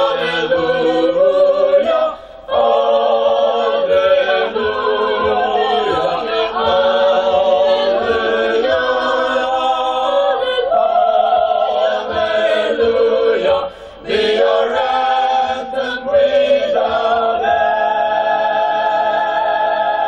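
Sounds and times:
mixed choir singing a hymn: 0:00.0 - 0:20.0.

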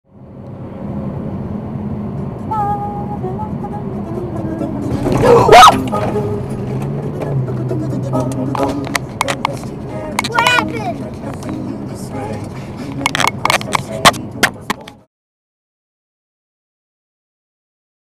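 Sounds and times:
car tyre and engine noise: 0:00.1 - 0:15.0.

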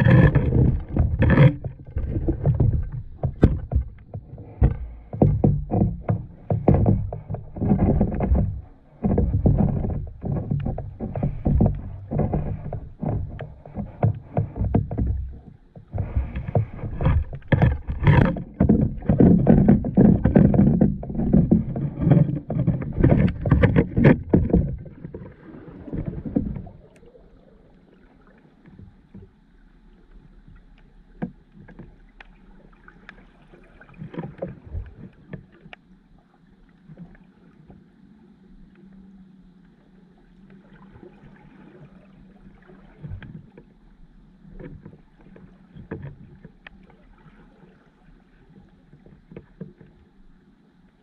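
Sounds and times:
crackling clicks and knocks: 0:00.0 - 0:27.2
underwater surging water rumble: 0:00.0 - 0:51.0.

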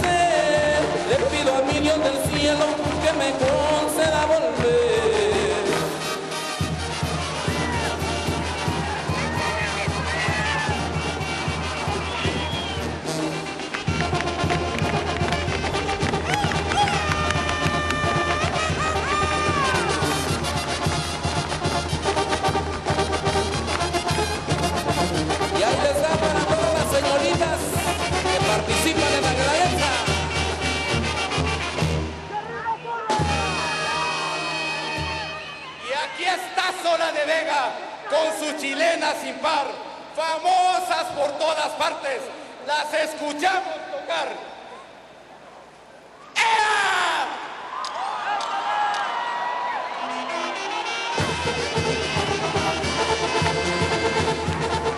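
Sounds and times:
brass band playing: 0:00.0 - 0:36.5, 0:49.8 - 0:54.9
people shouting: 0:07.1 - 0:12.8, 0:16.1 - 0:20.4, 0:32.4 - 0:36.2.

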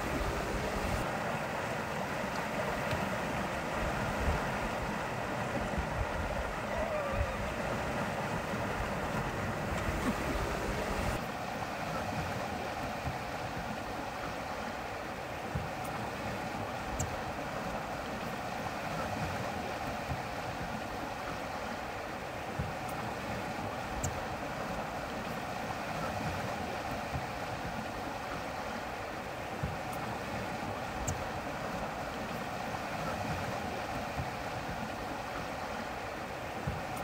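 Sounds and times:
wind buffeting microphone: 0:00.0 - 0:01.0, 0:03.6 - 0:11.2
wind and water rushing: 0:00.0 - 0:37.0
faint ticks: 0:16.9 - 0:17.2, 0:24.0 - 0:24.2, 0:31.0 - 0:31.3, 0:36.7 - 0:37.0.

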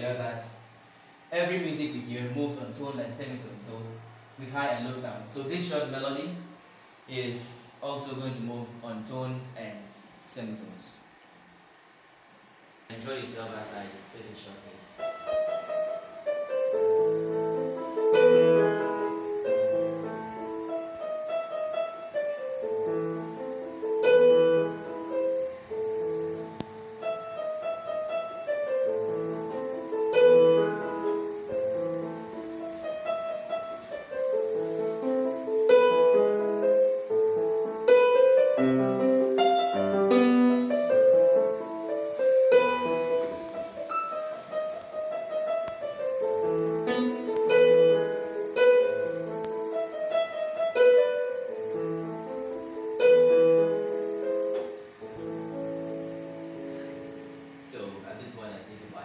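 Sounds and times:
electronic keyboard piano melody: 0:15.0 - 0:58.3.

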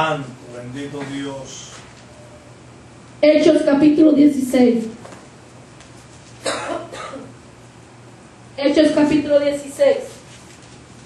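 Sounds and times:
woman coughing into microphone: 0:06.4 - 0:07.4.

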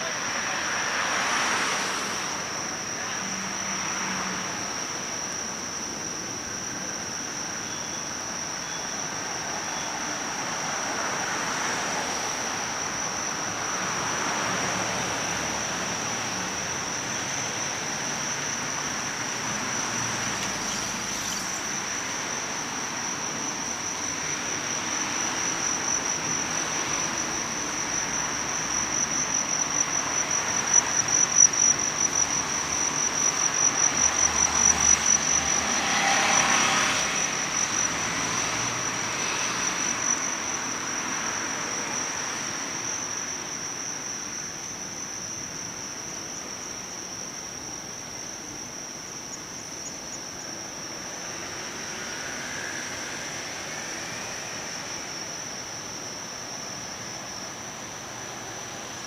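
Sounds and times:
crickets chirping: 0:00.0 - 0:59.0
street traffic noise: 0:00.0 - 0:59.0.

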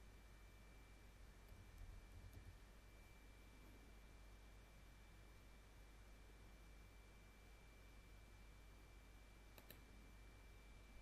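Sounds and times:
faint computer mouse clicks: 0:09.5 - 0:09.9.

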